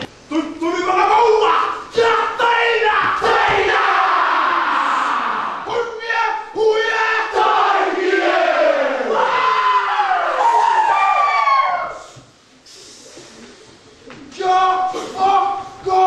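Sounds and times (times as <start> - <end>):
boys shouting a chant: 1.5 - 5.6.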